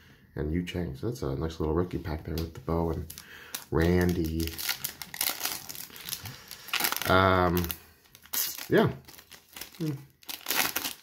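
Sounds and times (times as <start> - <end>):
foil wrapper crinkling and tearing: 2.4 - 11.0.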